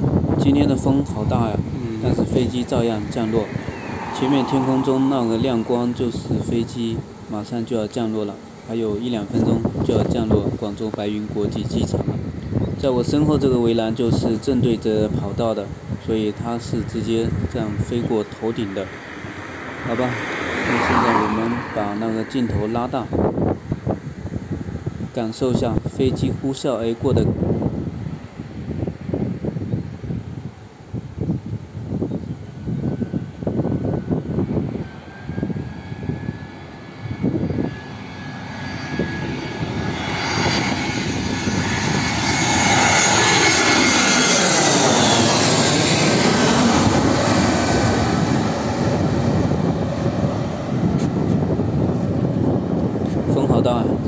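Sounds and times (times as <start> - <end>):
wind buffeting microphone: 0.0 - 7.5, 8.3 - 54.0
jet airliner passing overhead: 0.0 - 54.0.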